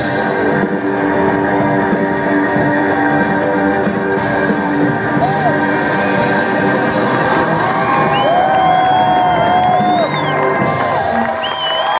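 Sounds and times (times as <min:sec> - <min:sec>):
crowd cheering and whooping: 0:05.0 - 0:11.9
long high whistle: 0:11.4 - 0:11.9.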